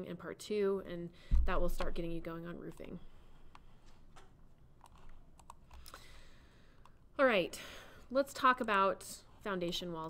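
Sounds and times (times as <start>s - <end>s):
computer controls clicking: 4.8s - 6.0s.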